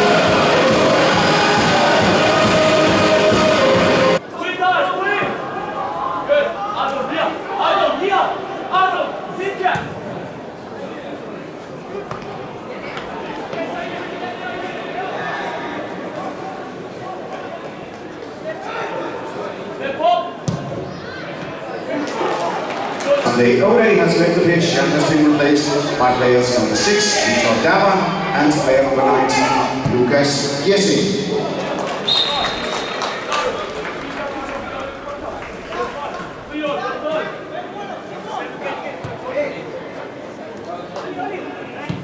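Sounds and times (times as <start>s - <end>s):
players shouting: 0.0s - 9.8s, 24.7s - 39.0s.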